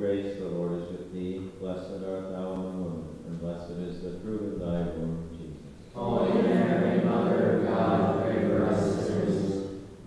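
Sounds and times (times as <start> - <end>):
congregation chanting in unison: 6.0 - 10.0.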